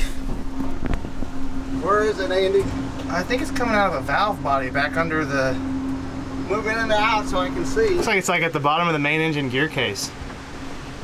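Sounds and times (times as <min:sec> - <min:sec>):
wind buffeting microphone: 0:00.0 - 0:08.7
machine hum: 0:00.0 - 0:11.0.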